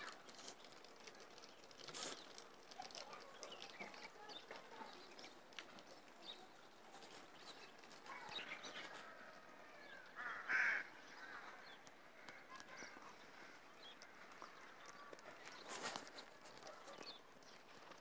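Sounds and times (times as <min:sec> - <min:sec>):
bird calls: 0:00.0 - 0:18.0.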